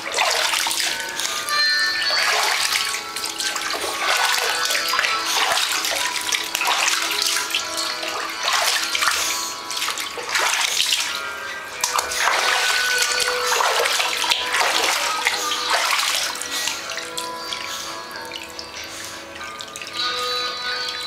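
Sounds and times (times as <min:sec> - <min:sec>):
water splashing in bathtub: 0:00.0 - 0:21.0.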